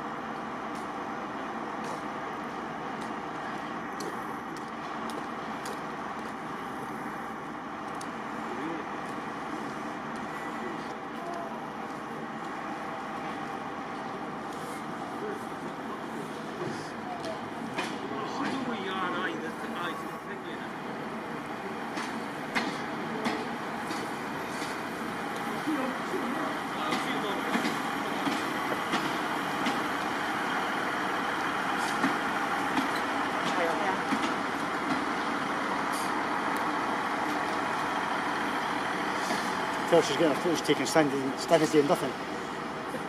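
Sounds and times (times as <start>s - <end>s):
diesel train engines running: 0.0s - 43.0s
train wheels clicking: 21.9s - 42.4s.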